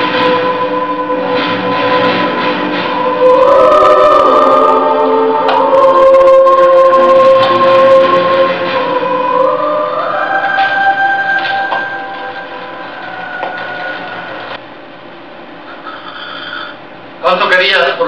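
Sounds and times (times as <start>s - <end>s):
choir holding long chords: 0.0s - 14.6s.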